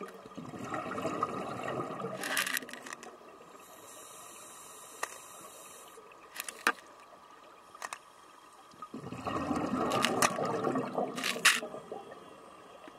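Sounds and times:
regulator bubbles gurgling underwater: 0.0 - 2.3, 6.9 - 12.9
underwater hiss: 3.5 - 6.2.

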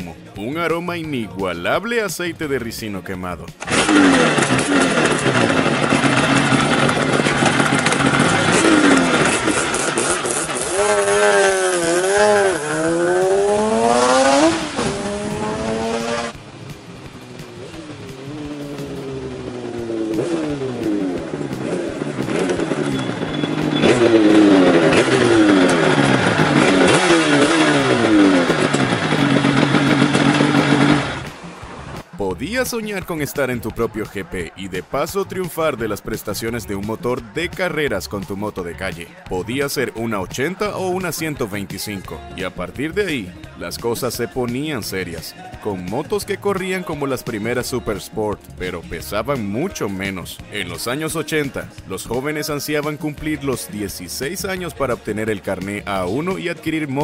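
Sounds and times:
two-stroke engine accelerating: 3.6 - 32.2.

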